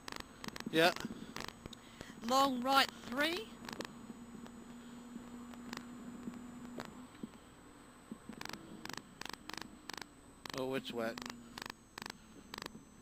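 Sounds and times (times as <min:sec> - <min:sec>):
faint car interior hum: 0:00.2 - 0:13.0.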